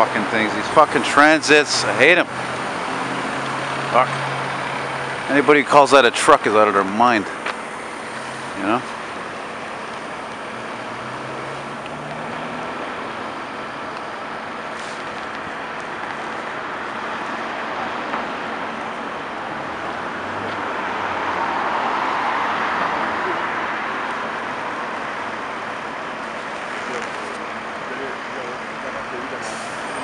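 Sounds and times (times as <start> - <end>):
passing cars and trucks: 0.0 - 30.0.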